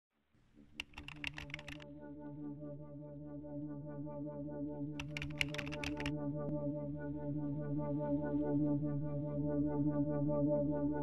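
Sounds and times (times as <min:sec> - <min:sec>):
keyboard key clicks: 0:00.7 - 0:01.8, 0:05.0 - 0:06.1.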